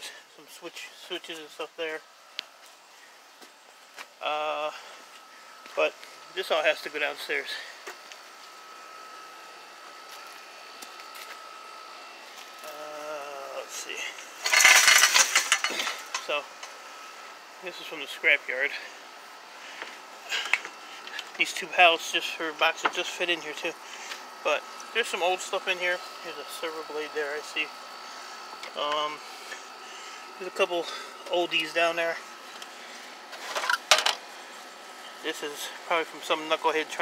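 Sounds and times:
scrap metal scraping: 14.4s - 16.2s
steel rail rattling and clanking: 14.4s - 16.3s.

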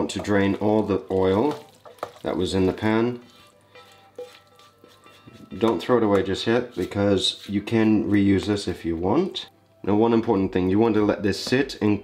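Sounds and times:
faint background music: 0.0s - 12.0s
spatula scraping a pan: 1.4s - 8.9s.

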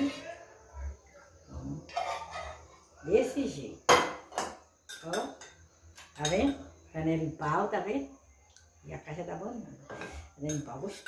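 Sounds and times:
faint animal calls: 1.9s - 2.8s.

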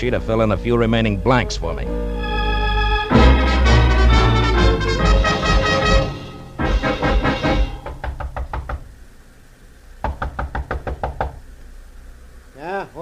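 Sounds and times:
man speaking: 0.0s - 2.0s, 12.6s - 13.0s
orchestral music: 0.0s - 8.0s
knocking on a door: 6.9s - 8.9s, 10.0s - 11.4s.

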